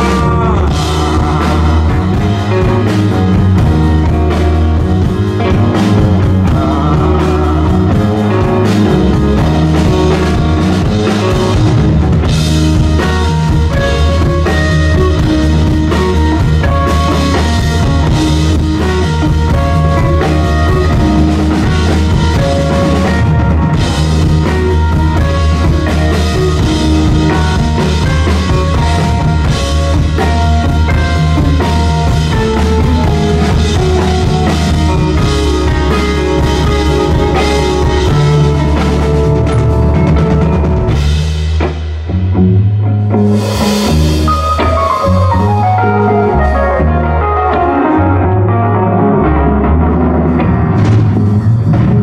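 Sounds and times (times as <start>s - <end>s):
drum kit beat: 0.0s - 42.4s, 43.1s - 48.2s
bass line: 0.0s - 52.0s
rock band playing: 0.0s - 52.0s.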